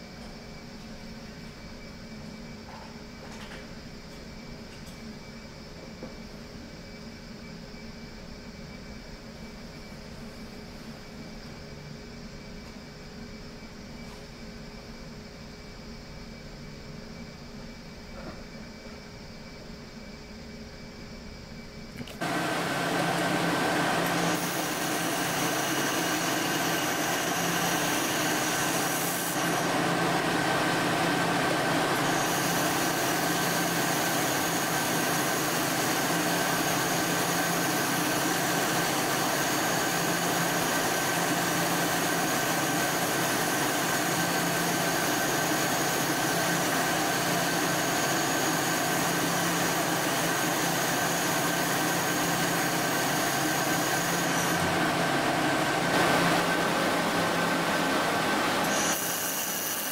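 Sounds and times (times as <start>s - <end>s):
machinery whirring: 22.0s - 59.9s.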